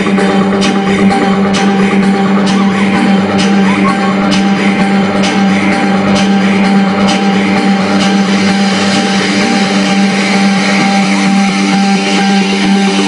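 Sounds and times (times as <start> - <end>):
loud distorted music from car stereo: 0.0 - 13.0
steady low drone: 0.0 - 13.0.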